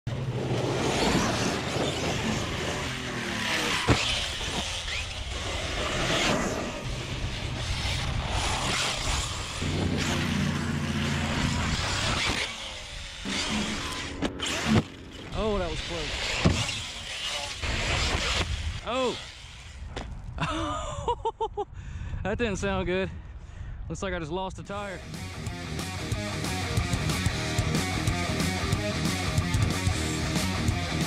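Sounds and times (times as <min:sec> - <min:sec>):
electric rc truck motor: 0:00.2 - 0:20.1.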